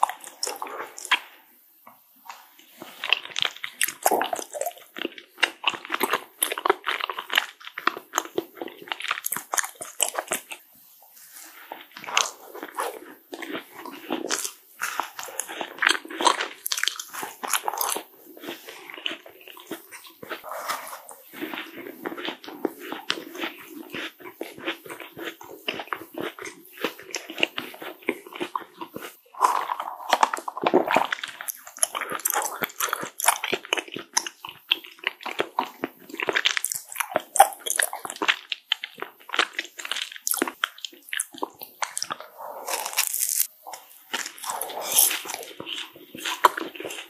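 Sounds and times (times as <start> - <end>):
chewing crunches: 0.0 - 1.4, 2.3 - 10.6, 11.3 - 47.0
wet mouth clicks: 0.0 - 1.4, 11.9 - 47.0
biting into macaron: 12.0 - 47.0.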